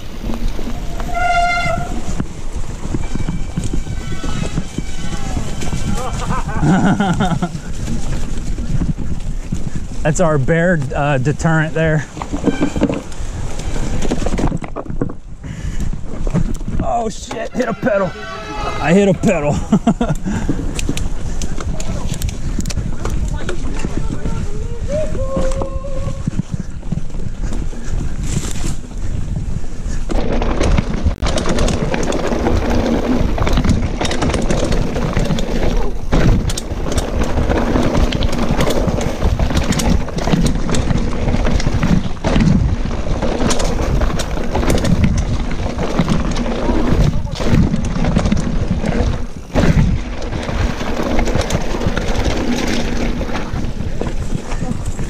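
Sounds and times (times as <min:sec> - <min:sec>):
wind on microphone: 0:00.0 - 0:10.8, 0:12.0 - 0:55.0
bike rattling over rocks: 0:00.0 - 0:55.0
bike tyres rumbling: 0:00.0 - 0:55.0.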